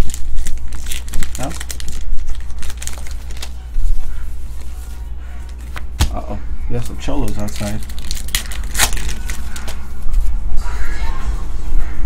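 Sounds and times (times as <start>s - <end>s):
foil wrapper tearing and crinkling: 0.0s - 3.6s, 7.1s - 9.8s.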